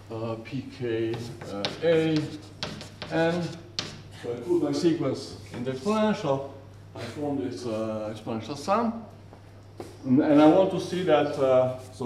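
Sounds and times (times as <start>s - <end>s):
chalk scratching on blackboard: 1.1s - 6.0s.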